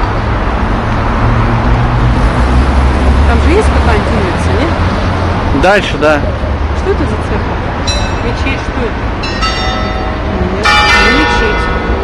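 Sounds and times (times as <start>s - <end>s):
cars and buses passing: 0.0s - 12.0s.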